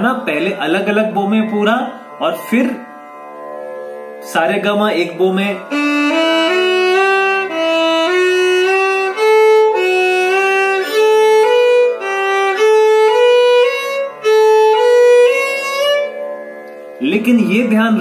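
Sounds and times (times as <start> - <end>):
solo violin playing scale exercise: 0.0 - 2.8, 4.2 - 18.0.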